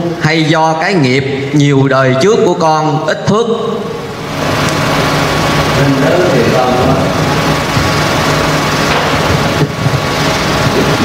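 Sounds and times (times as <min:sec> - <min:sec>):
mechanical drone with low hum: 0:00.0 - 0:11.0.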